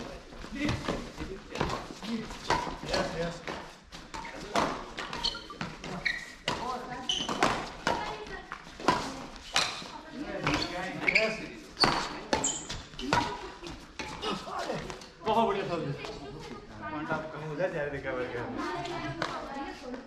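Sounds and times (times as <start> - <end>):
racket hitting shuttlecock: 4.1 - 10.6, 11.8 - 14.2.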